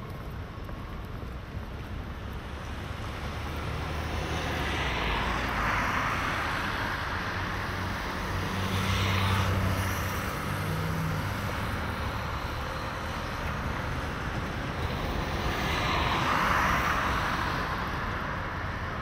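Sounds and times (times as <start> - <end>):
road traffic passing: 0.0 - 19.0.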